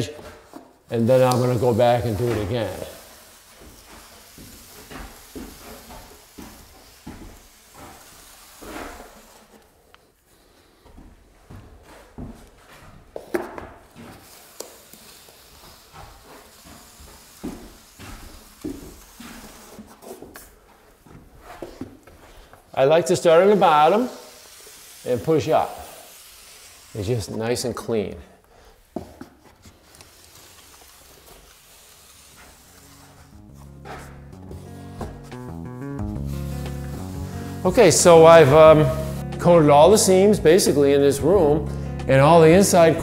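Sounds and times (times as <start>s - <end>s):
scraping and squishing of wet mud: 0.0s - 9.7s, 29.5s - 38.6s.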